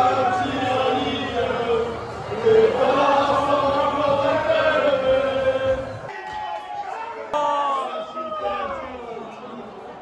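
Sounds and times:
crowd singing in unison: 0:00.0 - 0:06.1.

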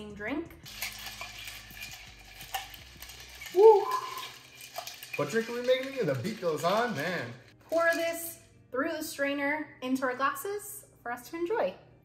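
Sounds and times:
spoon stirring in metal shaker: 0:00.6 - 0:08.4.

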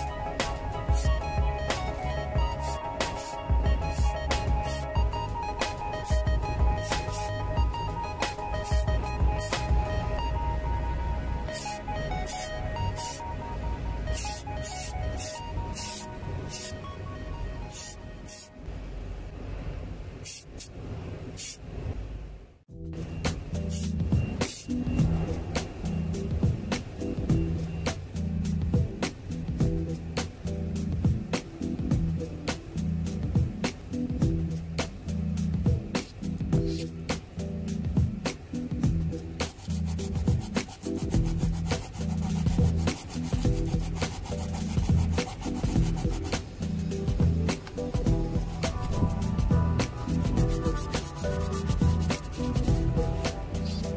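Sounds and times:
spray paint hissing: 0:00.0 - 0:09.9, 0:11.5 - 0:13.3, 0:14.1 - 0:16.8, 0:17.7 - 0:18.5, 0:20.2 - 0:20.7, 0:21.4 - 0:21.6, 0:23.5 - 0:30.9, 0:32.5 - 0:53.9
background music: 0:00.0 - 0:18.7, 0:22.7 - 0:53.9
steady low rumble: 0:00.0 - 0:20.2, 0:20.8 - 0:53.9
sanding sponge rubbing: 0:02.4 - 0:04.9, 0:06.1 - 0:07.5, 0:14.1 - 0:16.8, 0:39.2 - 0:53.9.

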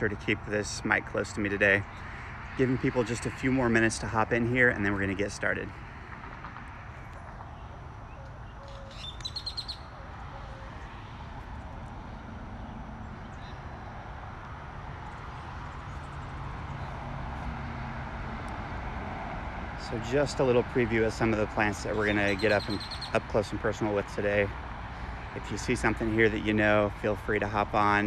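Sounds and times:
road traffic hum: 0:00.0 - 0:28.0
bird chirping: 0:07.0 - 0:11.0, 0:21.9 - 0:23.2.

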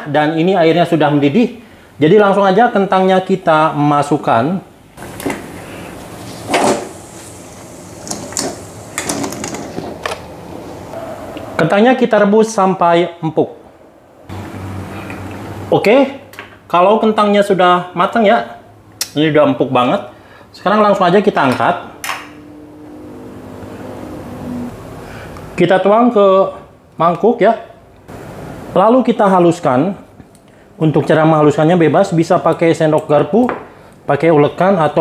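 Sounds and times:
steady low hum: 0:18.6 - 0:25.6.

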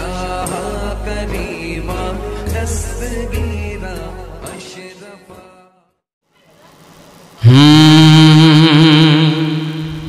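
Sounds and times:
man singing into a microphone: 0:07.4 - 0:10.0.

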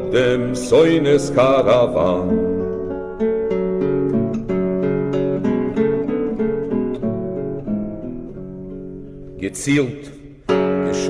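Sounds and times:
acoustic guitar picking melody: 0:00.0 - 0:11.0.

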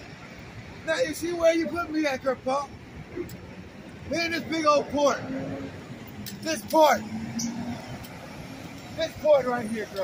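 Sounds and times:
truck traffic rumble: 0:00.0 - 0:10.0.

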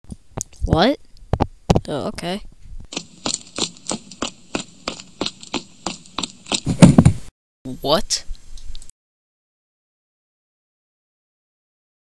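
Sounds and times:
footstep knocks: 0:02.9 - 0:07.3.

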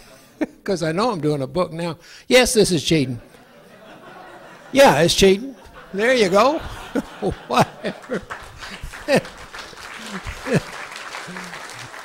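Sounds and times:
audience laughter: 0:03.2 - 0:12.0
short falling laughs: 0:10.0 - 0:11.8.

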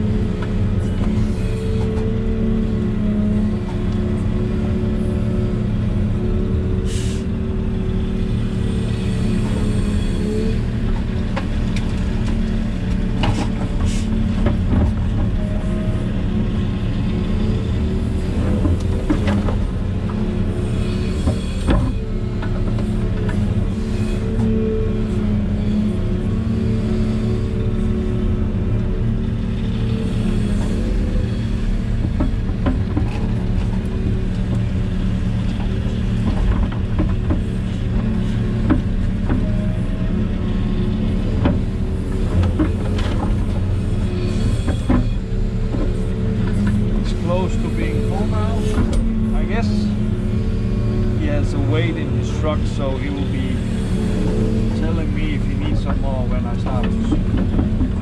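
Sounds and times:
excavator engine and hydraulics: 0:00.0 - 0:58.0.

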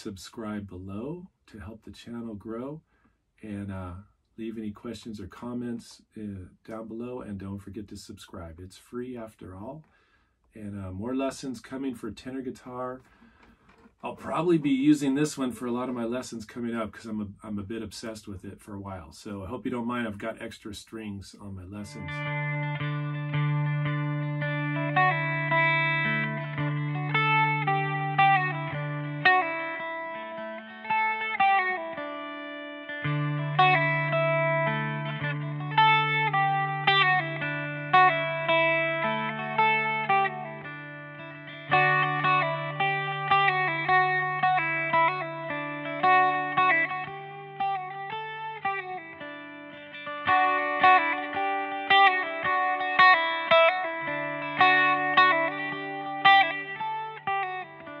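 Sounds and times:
electric mandolin playing dance tune: 0:21.8 - 0:58.0.

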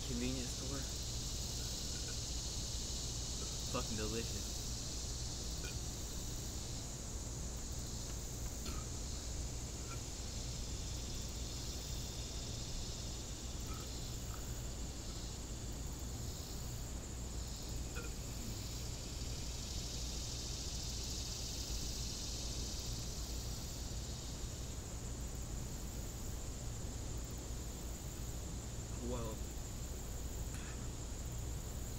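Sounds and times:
insects chorus: 0:00.0 - 0:31.9.

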